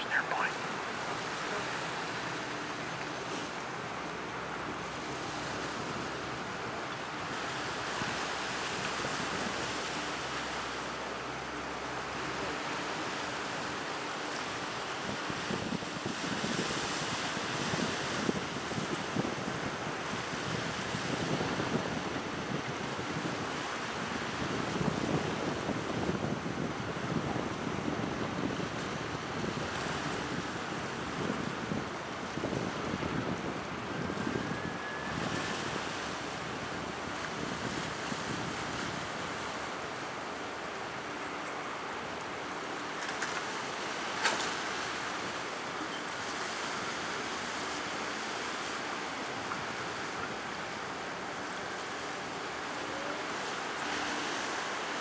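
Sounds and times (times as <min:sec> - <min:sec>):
sea water washing: 0:00.0 - 0:55.0
wind gusting on microphone: 0:00.0 - 0:55.0.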